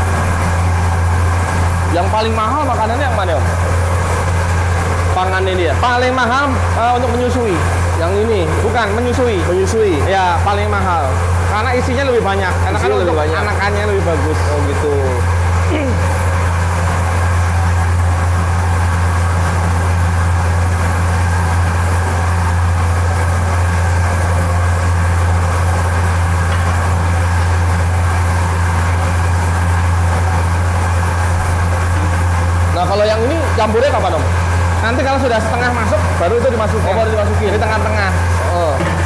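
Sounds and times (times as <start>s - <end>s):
feed mill machine humming: 0.0s - 39.0s.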